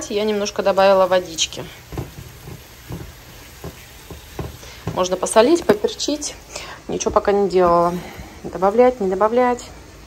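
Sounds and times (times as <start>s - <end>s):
vegetables sizzling in a frying pan: 0.0s - 10.0s
spatula scraping vegetables: 0.4s - 6.4s.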